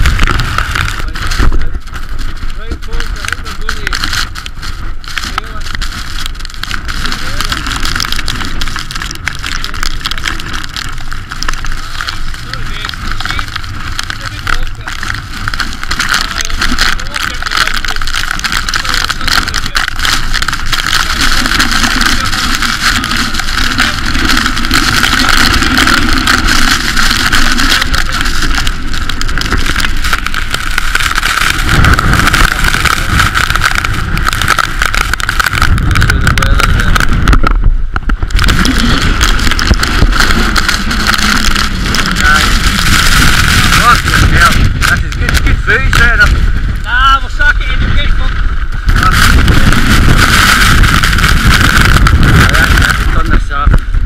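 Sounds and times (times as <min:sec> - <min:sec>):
wind blasting on microphone: 0:00.0 - 0:54.0.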